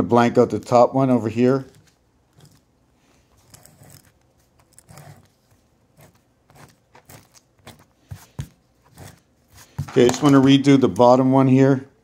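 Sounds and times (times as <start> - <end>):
correction tape scratching on paper: 3.3 - 9.9.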